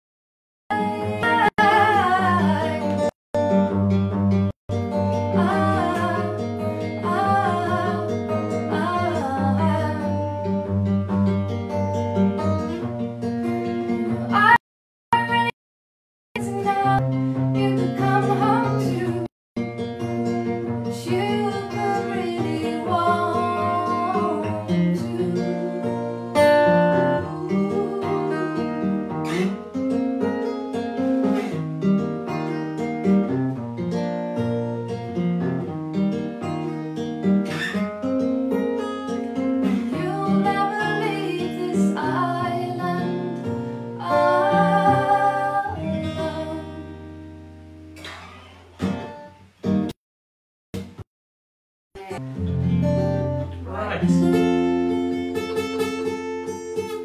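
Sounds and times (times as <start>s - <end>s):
woman singing: 0.7s - 3.1s, 5.3s - 10.3s, 13.9s - 14.6s, 15.2s - 15.6s, 16.4s - 19.3s, 20.9s - 29.0s, 39.6s - 47.0s
acoustic guitar: 0.7s - 15.6s, 16.4s - 50.0s, 50.8s - 51.0s, 52.0s - 57.0s.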